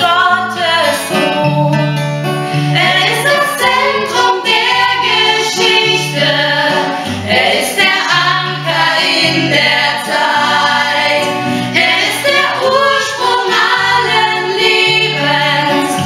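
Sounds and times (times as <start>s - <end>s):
women singing together: 0.0s - 1.8s, 2.7s - 16.0s
acoustic guitar: 0.0s - 16.0s.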